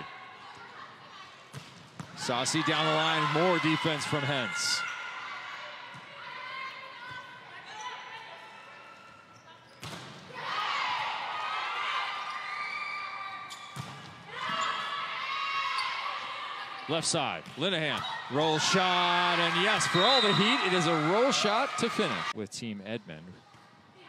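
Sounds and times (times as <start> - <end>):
shoes squeaking on court: 13.4 - 14.9
players calling: 16.7 - 22.4.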